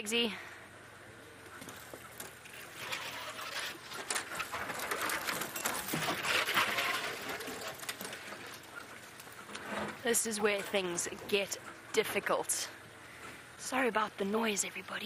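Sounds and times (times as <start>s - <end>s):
branches scraping and snapping on vehicle: 1.4s - 12.0s.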